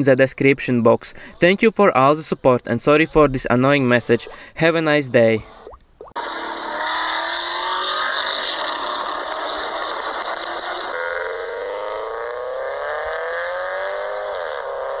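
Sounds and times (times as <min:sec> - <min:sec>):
car accelerating: 0:06.2 - 0:15.0
car engine revving: 0:06.2 - 0:15.0.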